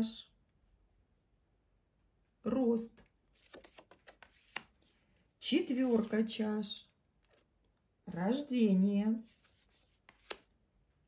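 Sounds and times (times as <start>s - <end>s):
cards rustling: 3.3s - 5.0s, 9.2s - 10.6s
card taps: 3.4s - 4.8s, 10.1s - 10.5s.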